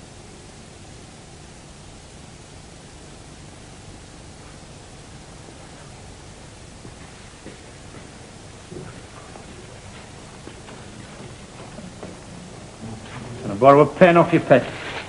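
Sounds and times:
steady hiss: 0.0 - 15.0
footsteps on hard floor: 6.8 - 13.4.

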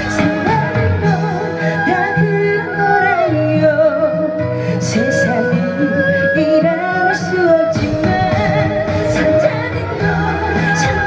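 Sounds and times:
amplified backing music: 0.0 - 11.0
woman singing into microphone: 0.0 - 11.0.

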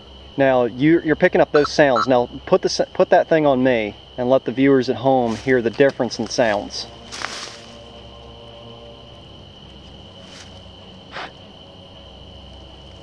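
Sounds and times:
crickets trilling: 0.0 - 13.0.

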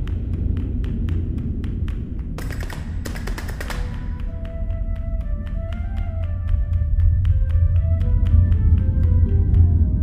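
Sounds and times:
sharp taps: 0.0 - 4.6
low steady rumble: 0.0 - 10.0
soft sustained music notes: 0.0 - 10.0.

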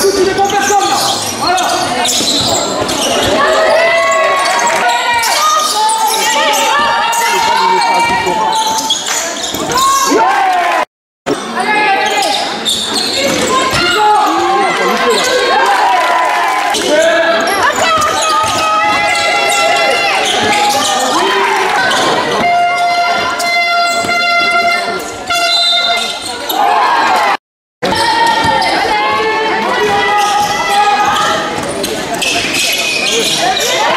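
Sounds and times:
players and spectators calling out: 0.0 - 33.9
horn-like tone: 22.4 - 26.1.

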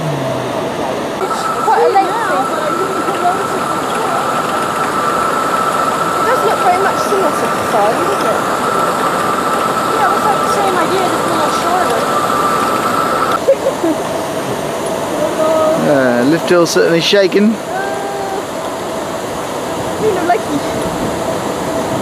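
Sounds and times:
lift mechanism whining: 0.0 - 13.4.

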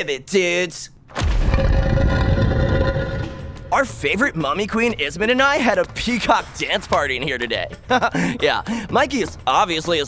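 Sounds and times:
deep boom: 1.2 - 4.1.

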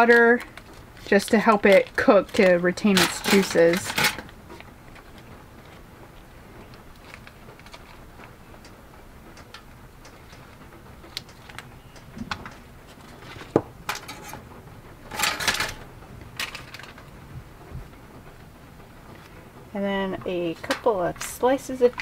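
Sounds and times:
foil crinkling rustle: 0.0 - 8.7, 9.4 - 14.5, 16.4 - 17.2, 20.3 - 22.0.

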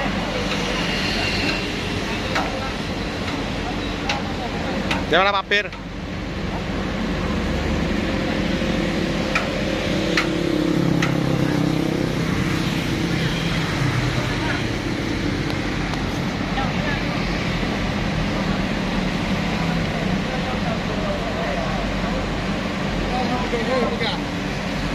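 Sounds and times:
vehicle engine running: 0.0 - 24.9.

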